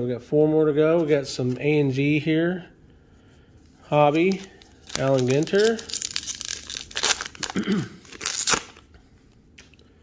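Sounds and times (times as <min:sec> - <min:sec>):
wrapper tearing and crinkling: 0:04.2 - 0:08.9.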